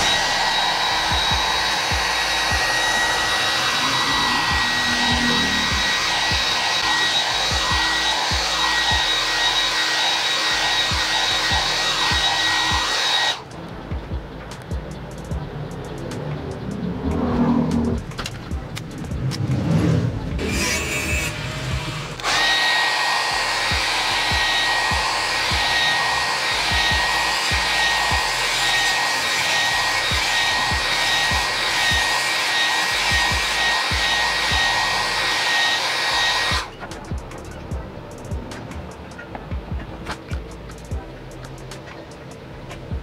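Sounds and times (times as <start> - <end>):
hair dryer running: 0.0 - 13.5, 20.4 - 37.2.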